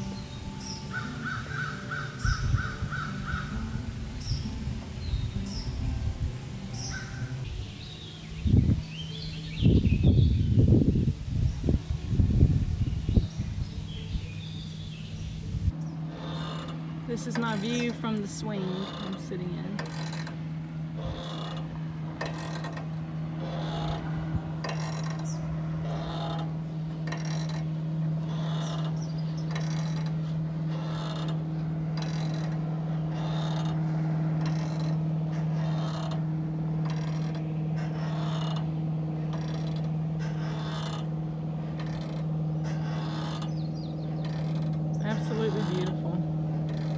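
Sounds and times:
swing chains creaking: 0.0 - 10.3, 13.8 - 46.9
low hum: 0.0 - 46.9.

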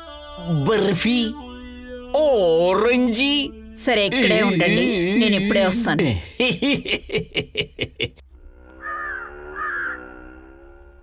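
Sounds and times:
man laughing: 4.2 - 8.3
crow-like caws: 8.6 - 10.6.

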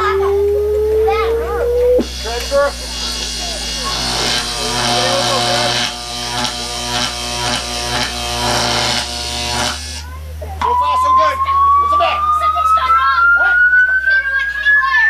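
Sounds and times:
rising whine: 0.0 - 2.9
electric buzzing: 0.0 - 10.0.

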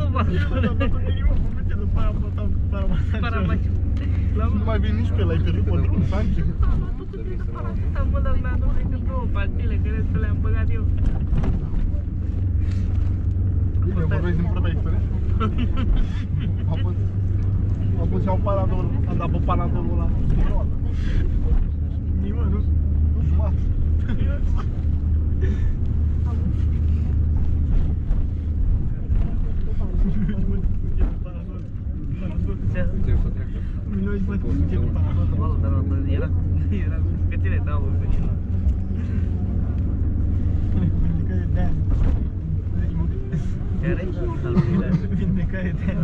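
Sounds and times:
minibus engine and road noise: 0.0 - 46.0
passengers' voices: 0.0 - 46.0.

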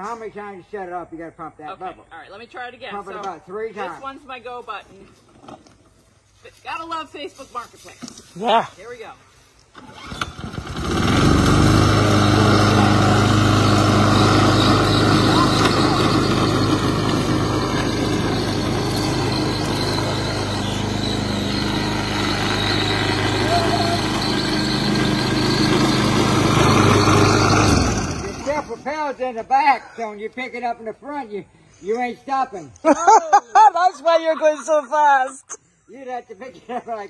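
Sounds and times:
lawn mower engine running: 9.3 - 28.9
lawn mower pull-started: 9.7 - 28.8.

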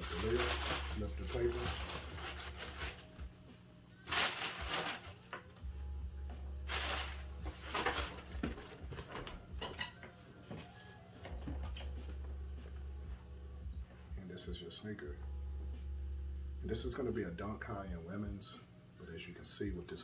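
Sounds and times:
wrapping paper rustling: 0.0 - 3.2, 4.0 - 5.5, 6.6 - 9.3.

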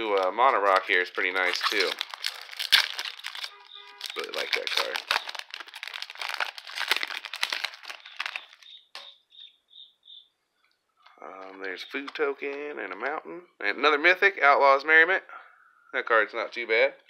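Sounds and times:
foil wrapper crinkling and tearing: 0.0 - 8.8.

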